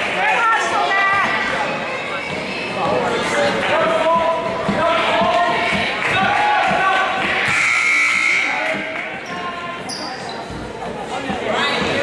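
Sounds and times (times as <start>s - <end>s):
voices echoing in hall: 0.0s - 12.0s.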